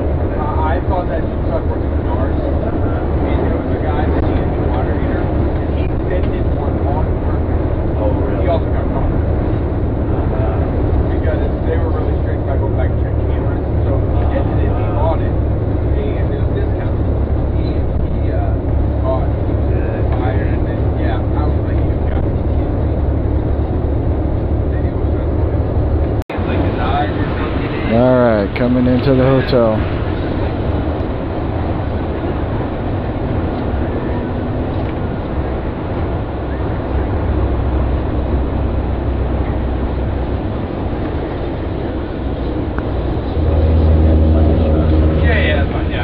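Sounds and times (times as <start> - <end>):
coach engine and road noise drone: 0.0 - 46.0
faint voices: 0.0 - 46.0.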